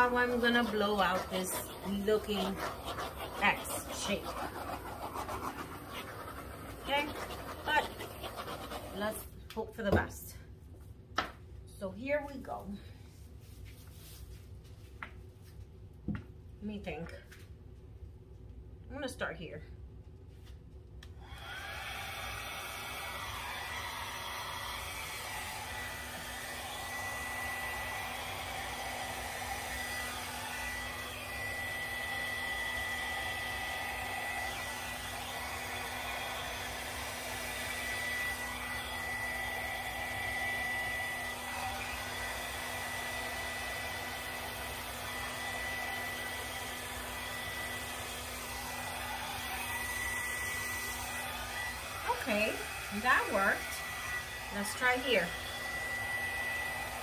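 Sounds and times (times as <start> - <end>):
hair dryer blowing: 0.0 - 9.4, 21.1 - 57.0.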